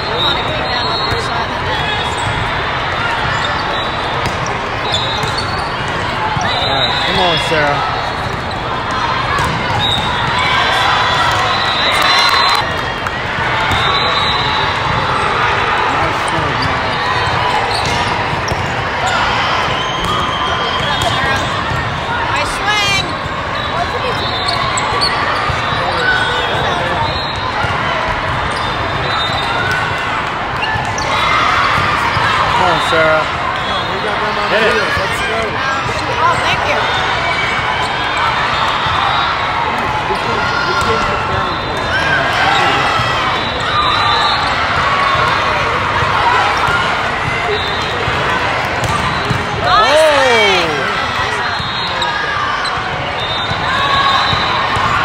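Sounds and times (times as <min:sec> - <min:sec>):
echoing crowd voices: 0:00.0 - 0:55.0
volleyballs hit and bouncing: 0:02.2 - 0:06.5, 0:07.1 - 0:11.5, 0:16.2 - 0:22.1, 0:44.6 - 0:51.4.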